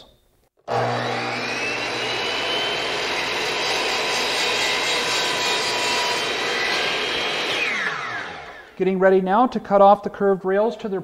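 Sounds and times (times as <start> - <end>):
miter saw cutting wood: 0.7 - 8.8.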